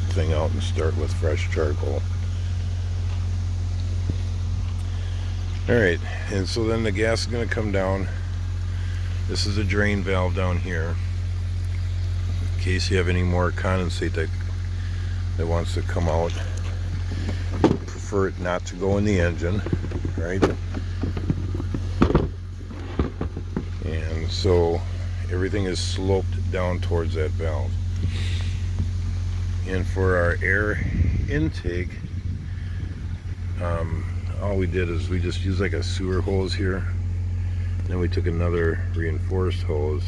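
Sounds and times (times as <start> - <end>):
low mechanical hum: 0.0 - 40.0
plastic seat clicks and knocks: 19.8 - 23.7.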